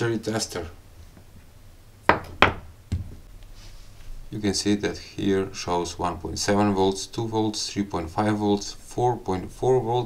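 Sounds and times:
knocks on workbench mat: 2.1 - 3.1.

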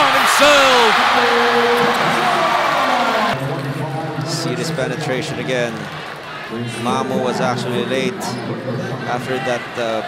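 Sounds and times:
crowd cheering: 0.0 - 3.4.

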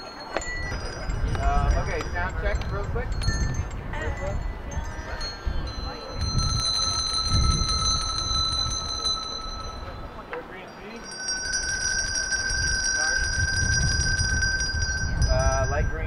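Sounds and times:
handbells ringing: 0.0 - 16.0
low crowd murmur: 0.0 - 16.0.

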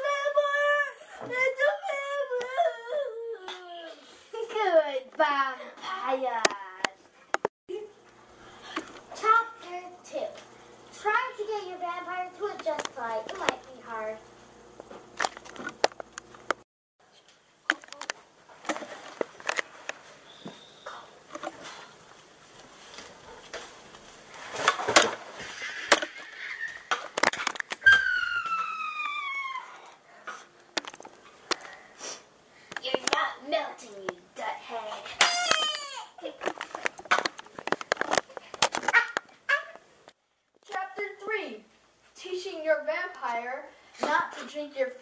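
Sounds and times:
falling high-pitched squeal: 27.8 - 29.8.

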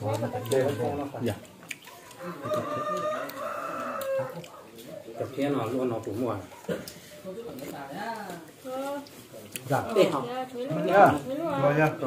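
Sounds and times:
rooster crowing: 2.0 - 4.6.

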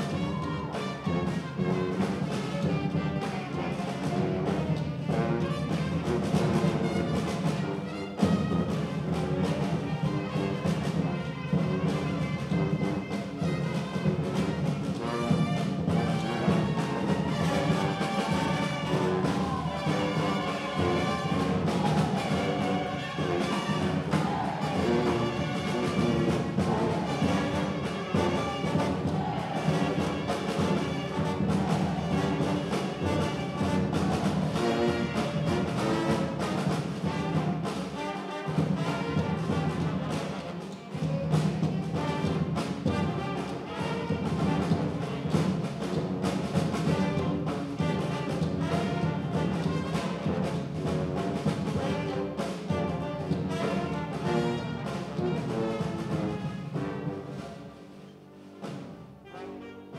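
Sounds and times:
snare and bass drums: 0.0 - 59.3
trombones: 0.0 - 59.9
trumpets: 0.0 - 59.9
saxophones: 6.8 - 42.0.

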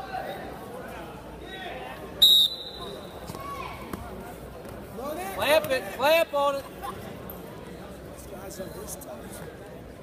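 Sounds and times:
referee's whistle blast: 2.2 - 3.0.

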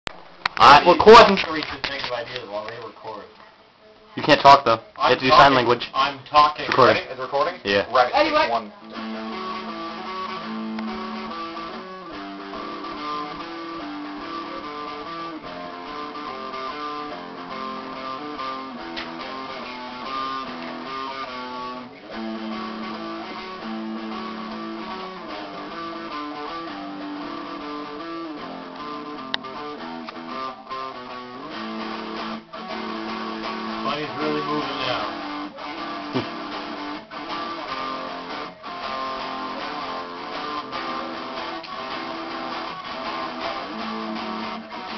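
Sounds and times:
guitar melody: 4.2 - 44.9.

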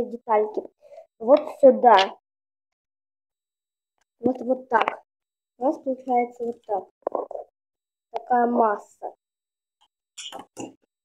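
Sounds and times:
child's voice: 0.0 - 2.2, 4.2 - 5.0, 5.6 - 7.4, 8.2 - 9.1.

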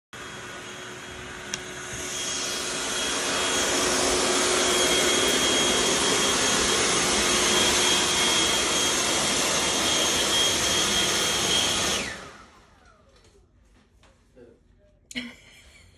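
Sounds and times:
leaf blower whining: 0.2 - 13.3.

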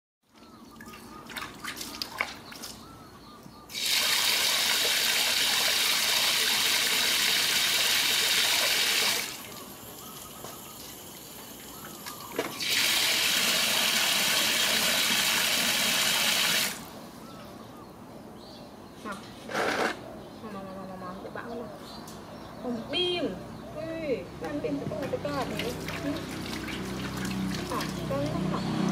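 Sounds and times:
water splashing into metal basin: 0.8 - 2.8, 3.7 - 9.7, 11.9 - 16.9, 25.4 - 28.5.

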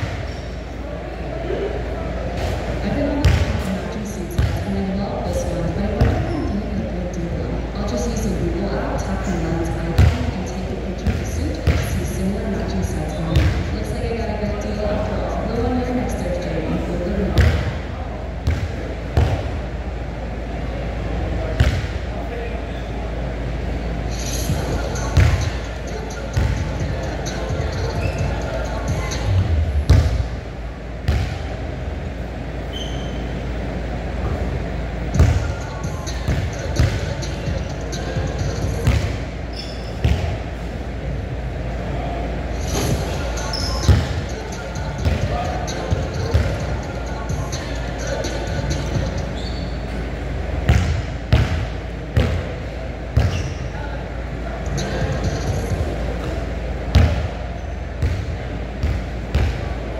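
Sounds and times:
indistinct voices talking: 0.0 - 59.9
basketball bouncing on gym floor: 3.2 - 3.7, 4.3 - 4.6, 10.0 - 10.3, 11.0 - 12.0, 13.3 - 13.7, 17.4 - 17.7, 18.4 - 19.4, 21.6 - 21.9, 25.2 - 25.6, 29.9 - 30.2, 31.1 - 31.4, 35.2 - 35.5, 38.8 - 39.2, 40.0 - 40.4, 43.8 - 44.2, 45.0 - 45.4, 50.7 - 52.4, 53.2 - 53.5, 56.9 - 57.3, 58.0 - 59.6.

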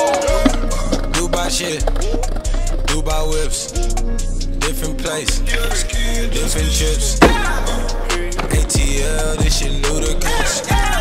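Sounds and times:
skateboard wheels rolling on concrete: 0.0 - 3.0, 7.2 - 11.0
hip-hop track: 0.0 - 11.0
skateboard knocking down: 7.2 - 7.6.

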